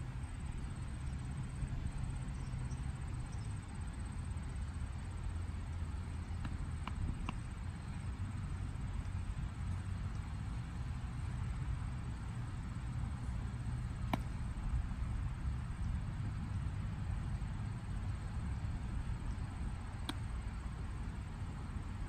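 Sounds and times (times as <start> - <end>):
low outdoor rumble: 0.0 - 22.0
baseball popping into glove: 14.0 - 14.4.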